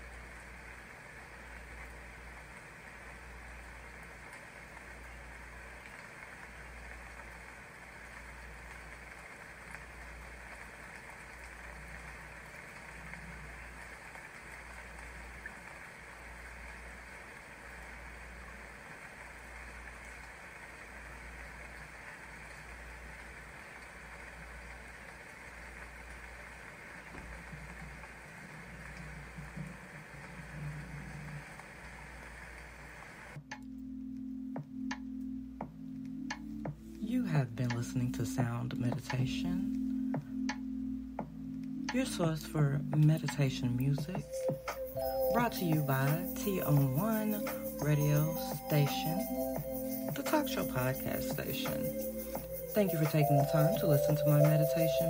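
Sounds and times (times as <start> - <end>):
rushing water-like noise: 0.0 - 33.4.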